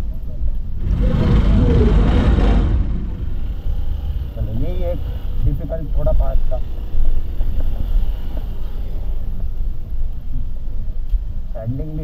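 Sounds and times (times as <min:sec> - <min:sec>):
motorcycle engine at low speed: 0:00.0 - 0:11.5
low rumble on microphone: 0:00.0 - 0:11.6.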